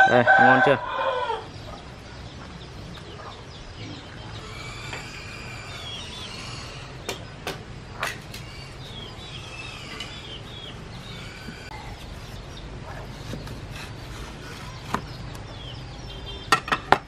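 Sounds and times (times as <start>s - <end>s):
chickens clucking: 0.0s - 16.8s.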